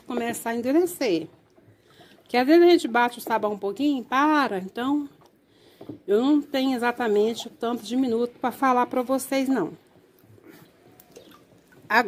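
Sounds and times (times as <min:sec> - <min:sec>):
woman talking: 0:00.0 - 0:01.4, 0:02.3 - 0:05.2, 0:06.1 - 0:09.9
wooden spoon stirring thick batter: 0:00.0 - 0:12.0.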